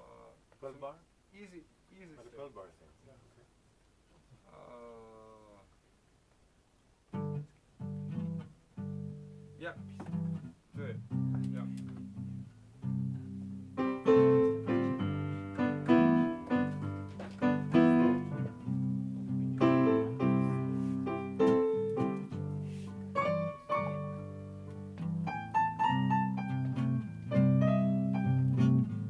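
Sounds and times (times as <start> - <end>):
digital piano bass notes: 7.1 - 29.0
piano chords: 11.3 - 29.0.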